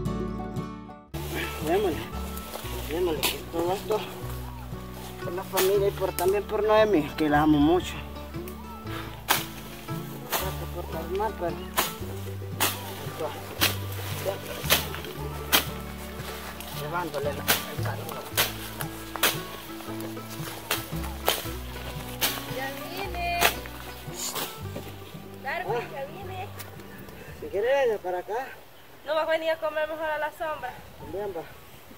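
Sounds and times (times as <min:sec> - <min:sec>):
background music with bass line: 0:00.0 - 0:27.6
machete chopping brush: 0:01.2 - 0:04.0, 0:05.3 - 0:06.4, 0:09.1 - 0:25.0.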